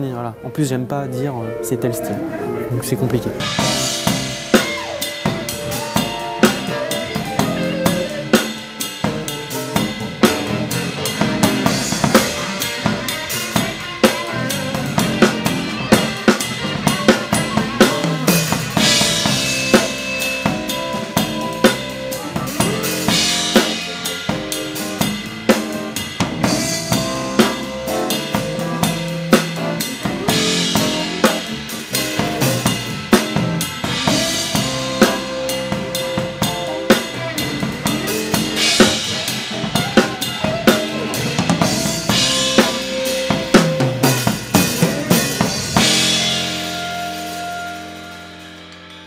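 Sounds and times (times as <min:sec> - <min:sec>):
held instrument notes: 0:00.0 - 0:49.0
drum kit groove: 0:03.0 - 0:49.0.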